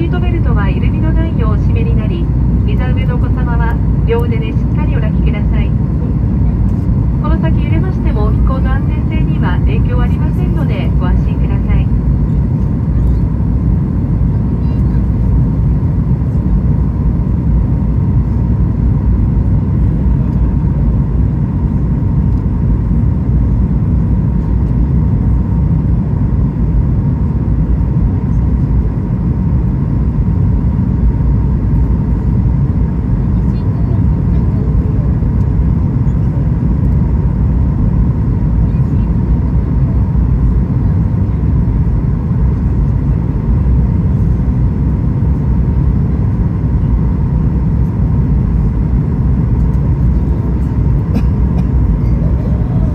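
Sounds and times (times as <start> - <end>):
airliner engines and airflow: 0.0 - 52.9
thin steady whine: 0.0 - 52.9.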